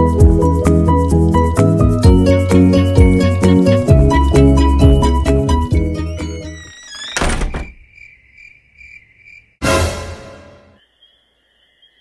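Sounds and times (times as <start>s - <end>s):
music: 0.0s - 6.7s, 9.6s - 10.8s
door slamming: 6.5s - 7.9s
crickets chirping: 7.2s - 9.6s, 10.8s - 12.0s.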